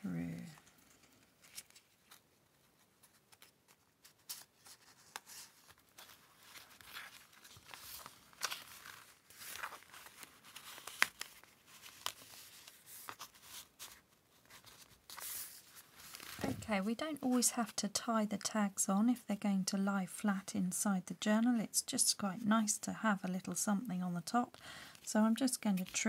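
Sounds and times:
paper and fabric rustling: 0.2s - 17.9s, 24.9s - 26.0s.

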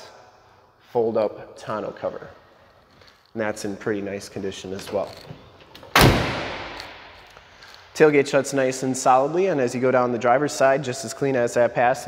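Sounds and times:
tailgate slamming shut: 5.8s - 6.8s.

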